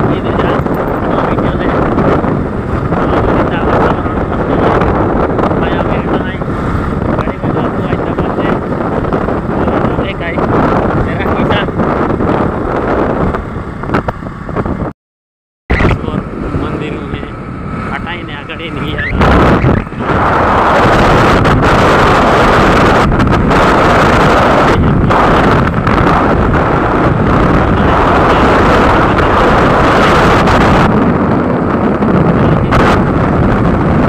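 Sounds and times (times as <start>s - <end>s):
motorbike engine and road noise: 0.0s - 14.9s, 15.7s - 34.0s
wind rushing over microphone: 0.0s - 14.9s, 15.7s - 34.0s.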